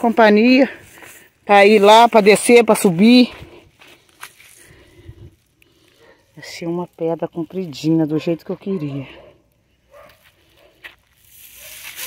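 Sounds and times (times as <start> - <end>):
footsteps on dirt road: 0.0 - 6.4, 8.2 - 12.0
scuffing rustle: 9.9 - 12.0.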